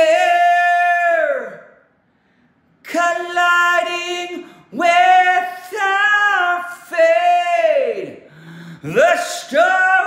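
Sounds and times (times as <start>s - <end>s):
man singing a cappella: 2.9s - 8.2s, 8.8s - 10.0s.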